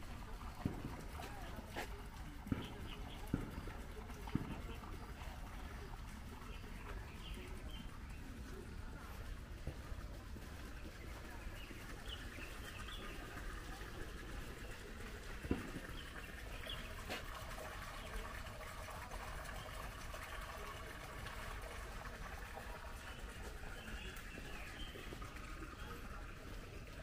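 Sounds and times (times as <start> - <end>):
birds chirping: 0.0 - 9.3, 10.4 - 14.8, 15.4 - 18.4, 22.0 - 26.8
outdoor background noise: 0.0 - 27.0.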